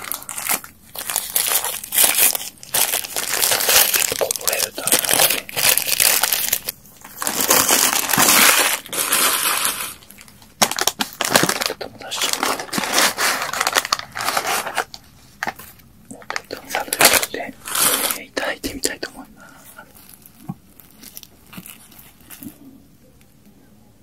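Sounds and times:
food wrapping crinkling and tearing: 0.0 - 22.8.

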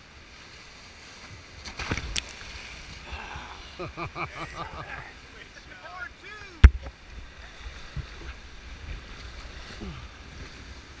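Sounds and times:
rushing whitewater: 0.0 - 11.0.

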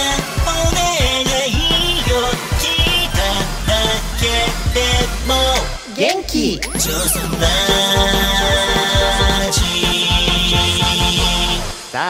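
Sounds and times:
theme music with steady beat: 0.0 - 5.9, 6.6 - 12.0.

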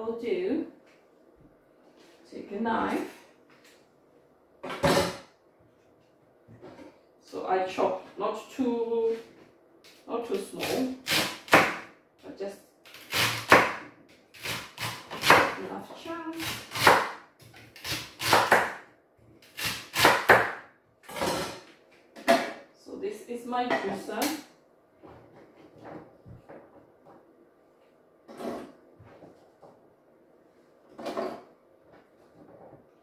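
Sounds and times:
knife chopping on wooden board: 14.5 - 15.6, 16.6 - 17.2, 17.9 - 18.8, 19.6 - 20.6.

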